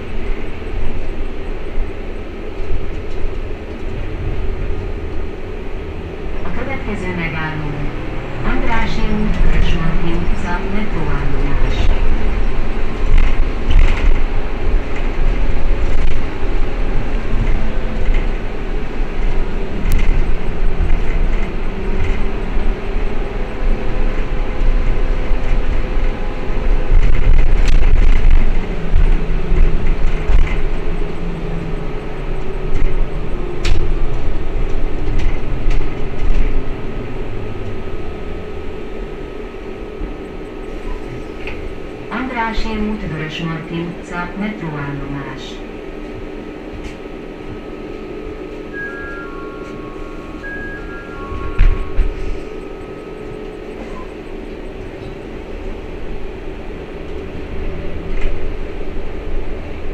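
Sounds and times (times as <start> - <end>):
road rumble: 0.0 - 59.9
electric drive hum and whine: 45.2 - 59.9.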